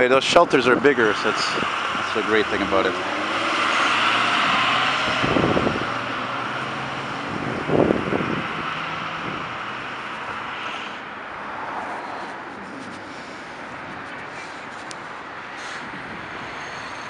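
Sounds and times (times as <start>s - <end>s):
city street traffic: 0.0s - 17.0s.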